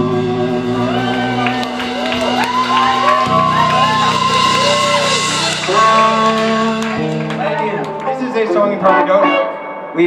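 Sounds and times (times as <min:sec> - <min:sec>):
harmonica wailing: 0:00.0 - 0:09.8
blues-rock band playing: 0:00.0 - 0:10.0.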